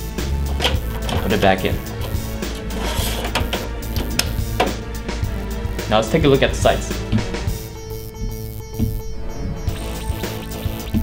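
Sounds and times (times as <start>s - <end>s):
background music: 0.0s - 11.0s
drive tray clicking shut: 0.4s - 5.0s.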